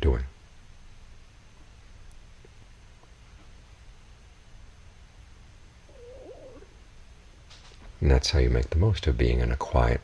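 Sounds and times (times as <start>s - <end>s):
low background hum: 0.0s - 10.0s
wavering animal call: 5.8s - 6.8s.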